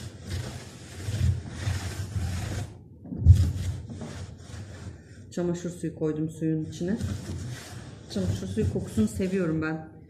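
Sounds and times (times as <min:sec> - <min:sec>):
cloth rubbing on wooden floor: 0:00.0 - 0:05.3, 0:06.6 - 0:09.6.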